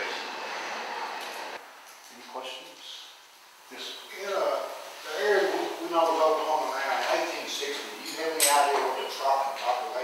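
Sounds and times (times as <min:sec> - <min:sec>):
man giving a lecture: 0:03.7 - 0:10.0.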